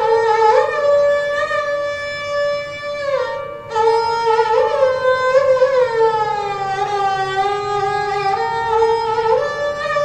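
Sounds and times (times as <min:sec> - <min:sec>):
bowed sarangi melody: 0:00.0 - 0:10.0.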